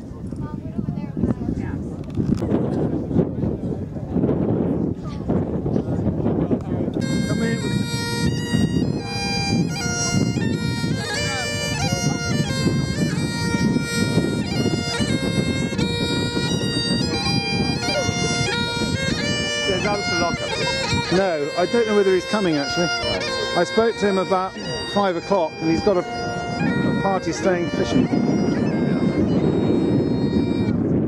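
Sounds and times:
bagpipes playing: 7.0s - 31.0s.

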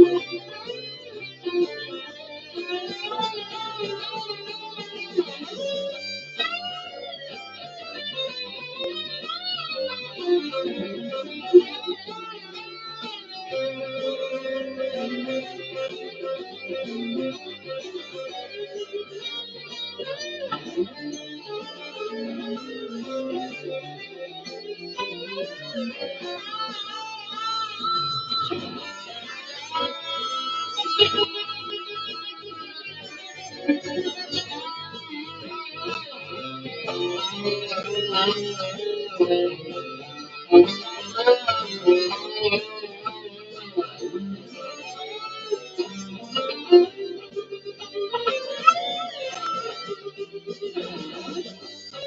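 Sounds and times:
electric guitar lead: 0.0s - 52.0s.

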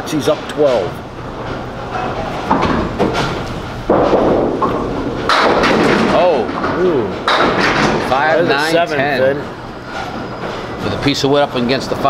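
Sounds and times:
bowling pins clattering: 0.2s - 11.0s
bowling ball rolling: 0.8s - 10.8s
bowling ball thud on wooden lane: 2.5s - 8.0s
voices in a hall: 6.0s - 12.0s.

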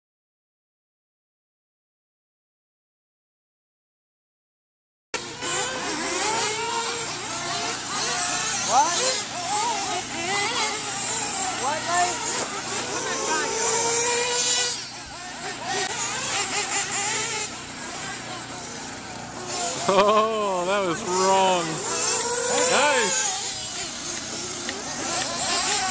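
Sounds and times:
electric motors whining: 5.2s - 25.9s
people talking: 8.5s - 10.7s, 11.3s - 14.4s, 17.9s - 23.4s.

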